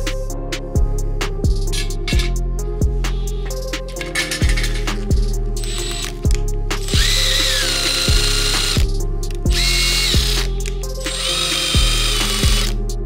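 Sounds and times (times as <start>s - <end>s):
background music with steady beat: 0.0s - 13.0s
cordless drill motor whining: 5.6s - 6.2s, 6.9s - 8.8s, 9.5s - 12.8s.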